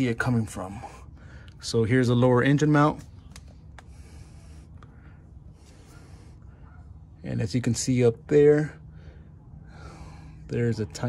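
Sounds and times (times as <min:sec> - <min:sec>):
low steady hum: 0:00.0 - 0:11.0
camera handling noise: 0:03.0 - 0:03.9
soft breathing: 0:03.7 - 0:06.9, 0:08.8 - 0:10.5.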